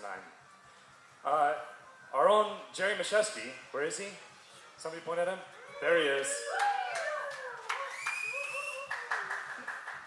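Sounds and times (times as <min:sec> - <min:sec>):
cheering voices: 0:05.6 - 0:09.3
audience clapping: 0:06.6 - 0:10.0.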